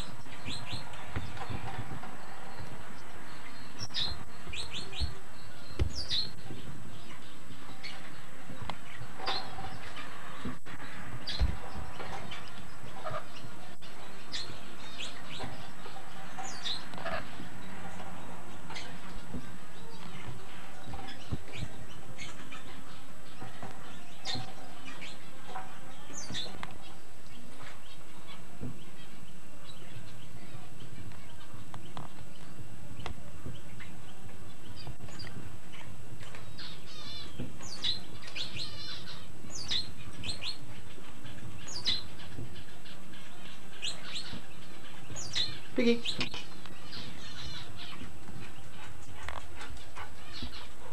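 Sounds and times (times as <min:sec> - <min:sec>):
birds chirping: 0:00.0 - 0:50.9.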